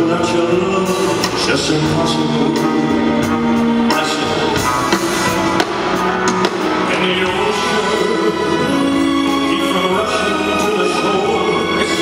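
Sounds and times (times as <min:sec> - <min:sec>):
live band with strings: 0:00.0 - 0:12.0
person singing: 0:00.0 - 0:12.0
drum hits: 0:03.2 - 0:07.8.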